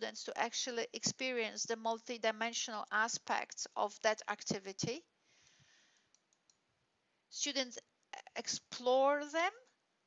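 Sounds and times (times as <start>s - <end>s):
computer mouse clicks: 6.1s - 6.6s.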